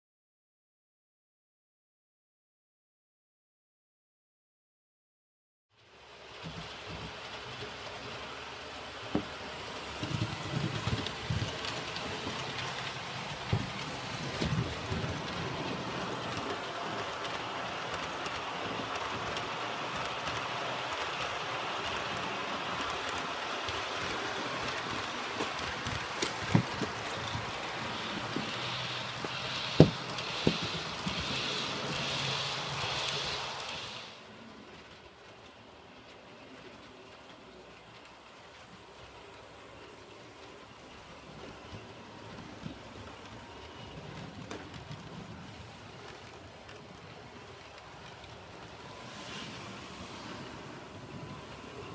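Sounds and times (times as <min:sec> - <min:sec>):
model train motor whirring: 0:06.1 - 0:51.9
sharp clicks of track: 0:10.0 - 0:35.0.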